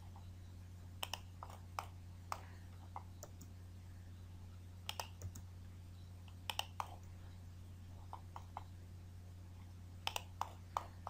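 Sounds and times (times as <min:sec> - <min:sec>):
faint low hum: 0:00.0 - 0:11.0
mouse and keyboard clicks: 0:01.0 - 0:03.5, 0:04.9 - 0:05.4, 0:06.3 - 0:07.1, 0:10.0 - 0:10.9.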